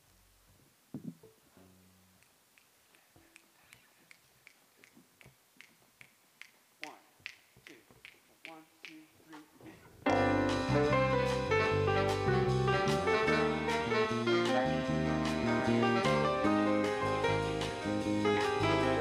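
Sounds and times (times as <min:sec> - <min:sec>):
fingers snapping: 0:02.2 - 0:09.5.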